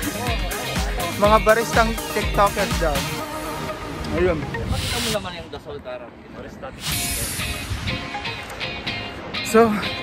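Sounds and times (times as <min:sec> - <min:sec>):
short hiss: 0:06.8 - 0:07.8.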